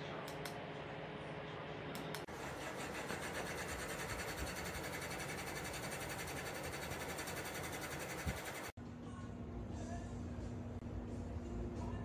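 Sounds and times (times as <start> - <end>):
ceiling fan whirring: 0.0 - 12.0.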